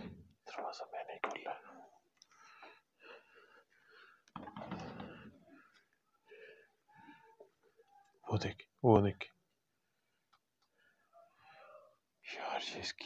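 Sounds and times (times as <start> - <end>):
man whispering: 0.4 - 2.1, 7.9 - 9.3, 11.1 - 13.0.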